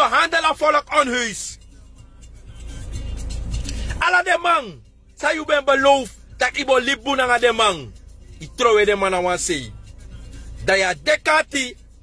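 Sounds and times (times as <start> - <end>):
vehicle rumble inside car: 0.0 - 12.0.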